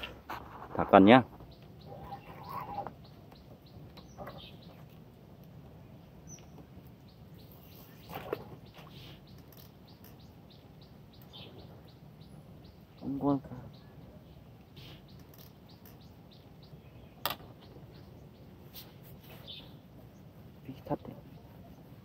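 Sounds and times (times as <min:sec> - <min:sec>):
low outdoor background: 0:00.0 - 0:22.0
bird chirping: 0:01.3 - 0:05.0, 0:05.8 - 0:22.0.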